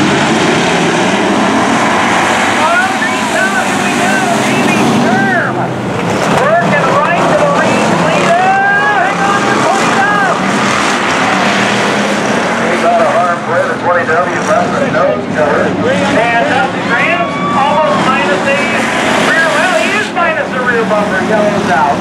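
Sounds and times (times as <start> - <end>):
race car engines passing: 0.0 - 22.0.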